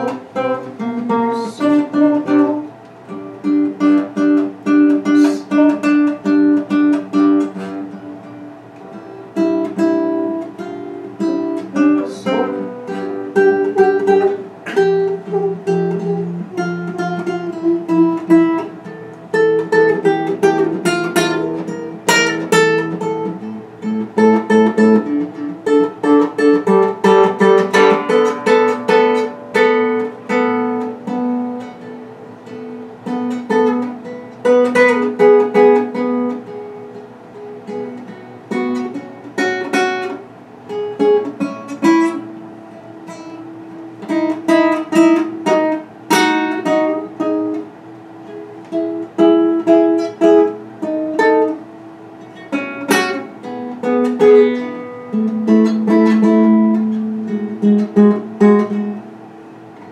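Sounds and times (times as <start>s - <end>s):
solo classical guitar: 0.0s - 59.9s.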